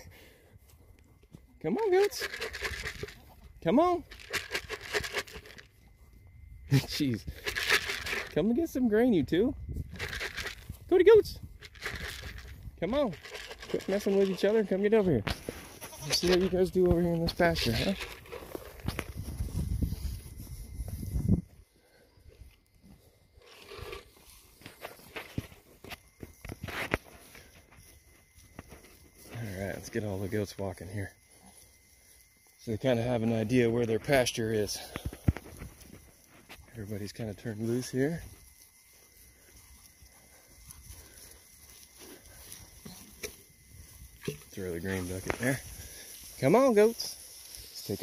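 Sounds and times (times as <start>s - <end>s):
goats bleating: 15.6s - 16.6s.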